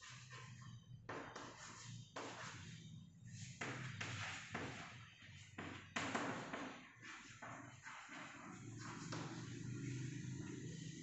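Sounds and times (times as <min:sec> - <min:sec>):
chalk scratching on blackboard: 0:00.0 - 0:11.0.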